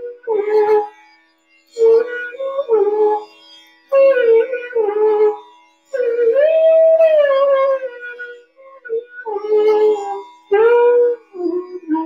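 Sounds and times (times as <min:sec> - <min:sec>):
bamboo flute playing: 0:00.0 - 0:01.0, 0:01.7 - 0:03.3, 0:03.9 - 0:12.0.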